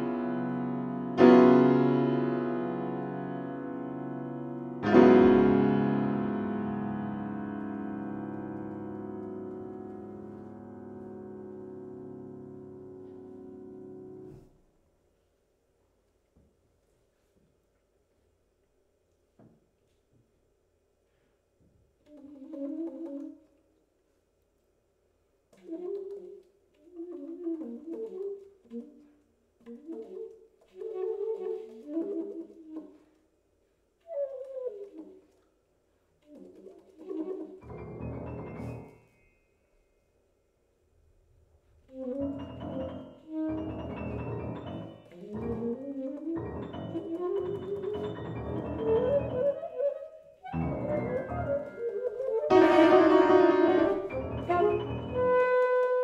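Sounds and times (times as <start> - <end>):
alto saxophone: 41.9 - 49.7, 50.5 - 56.0.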